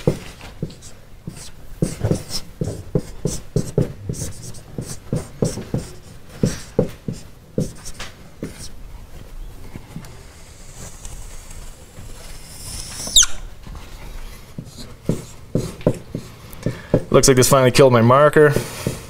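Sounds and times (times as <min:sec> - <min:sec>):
marker writing on whiteboard: 0:00.0 - 0:08.8, 0:14.2 - 0:17.4
marker squeak: 0:12.5 - 0:13.5.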